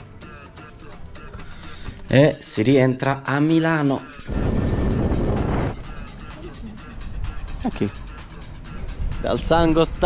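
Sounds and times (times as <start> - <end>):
background music with beat: 0.0 - 2.4, 3.2 - 10.0
wind rush: 4.3 - 6.0.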